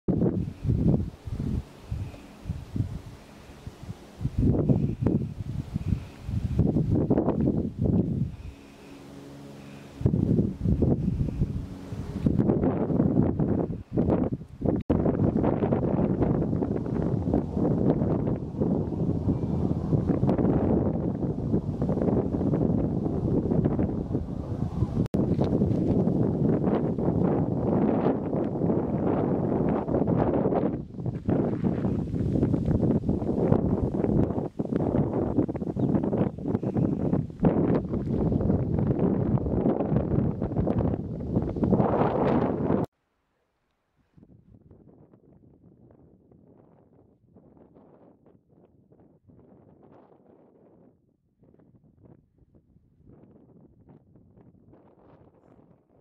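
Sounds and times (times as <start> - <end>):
wind gusting across microphone: 0.1 - 42.9, 44.2 - 56.0.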